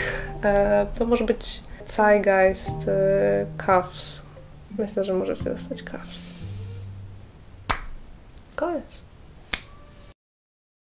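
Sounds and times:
finger snap: 7.7 - 8.5, 9.5 - 9.8.

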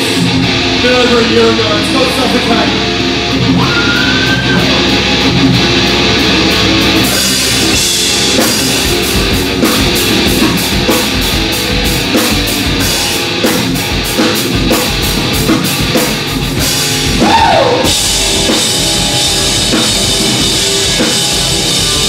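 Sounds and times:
electric guitars playing chords: 0.0 - 22.0
drum kit crashing: 3.6 - 22.0.

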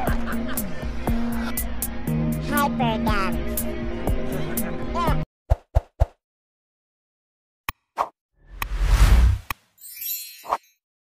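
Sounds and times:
music: 0.0 - 5.3.

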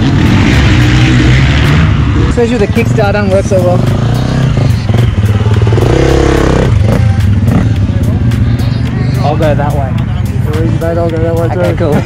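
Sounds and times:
dirt bike engine idling and revving: 0.0 - 12.0.

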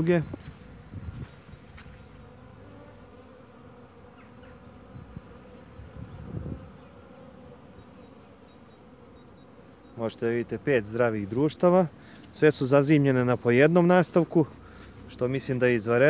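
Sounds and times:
bees buzzing: 0.0 - 16.0.

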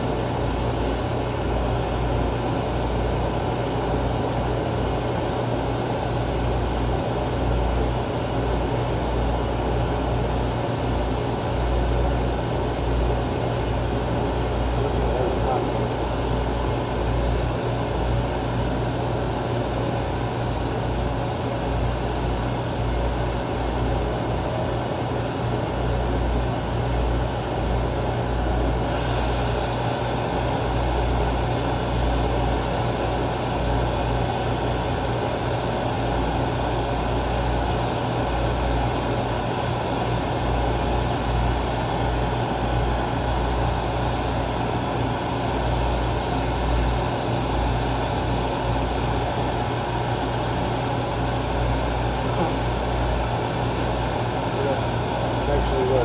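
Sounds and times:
low hum of shop equipment: 0.0 - 56.0
torch flame hissing: 28.8 - 30.6.

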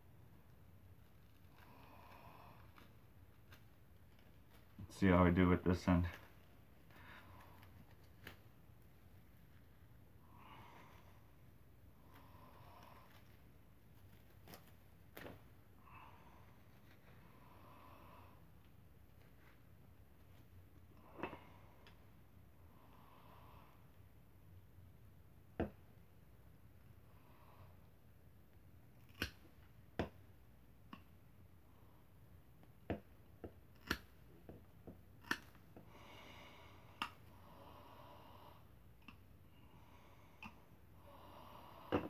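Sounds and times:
quiet breaths: 0.0 - 42.0.

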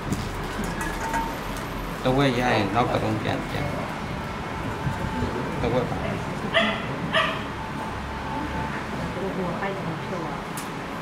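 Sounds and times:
dog barking: 6.5 - 7.5.

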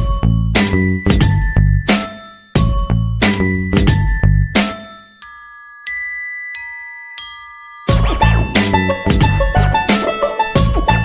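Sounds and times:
chiming bell-like notes: 0.0 - 11.0
bass line: 7.9 - 10.0.

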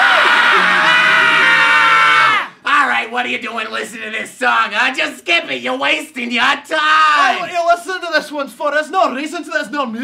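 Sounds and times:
person screaming: 0.0 - 2.6
person shouting: 6.9 - 7.6.

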